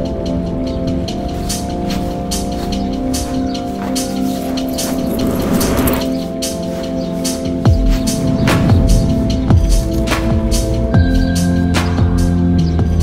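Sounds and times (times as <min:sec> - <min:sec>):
ambient music with held notes: 0:00.0 - 0:13.0
hissing swell: 0:04.6 - 0:06.3.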